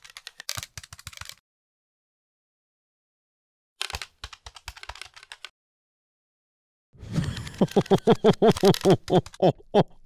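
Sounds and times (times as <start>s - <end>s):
computer keyboard typing: 0.0s - 1.4s, 3.8s - 5.5s, 7.4s - 9.5s.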